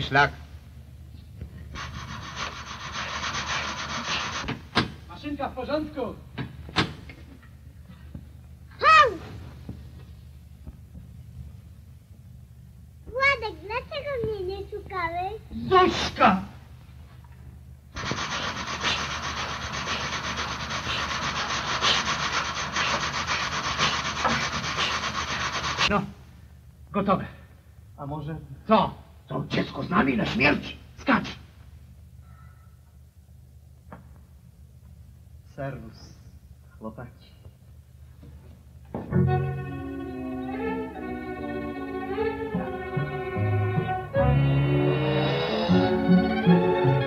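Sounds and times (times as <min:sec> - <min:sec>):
dry rasping scrape: 0:01.8 - 0:04.5, 0:18.0 - 0:25.9.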